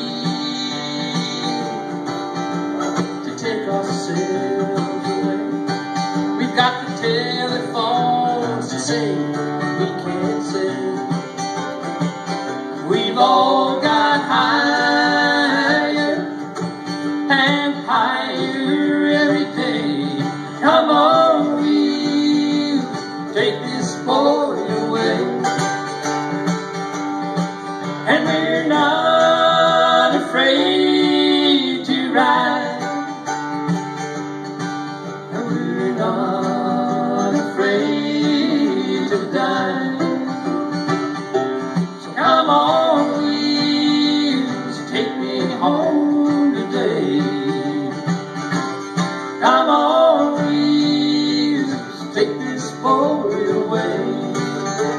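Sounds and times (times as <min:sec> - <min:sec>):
person singing: 0:00.0 - 0:02.1, 0:03.1 - 0:05.8, 0:06.4 - 0:11.5, 0:12.7 - 0:25.9, 0:28.0 - 0:33.3, 0:35.3 - 0:40.9, 0:41.7 - 0:48.3, 0:49.3 - 0:54.9
acoustic guitar: 0:00.0 - 0:54.9
mandolin: 0:00.0 - 0:54.9.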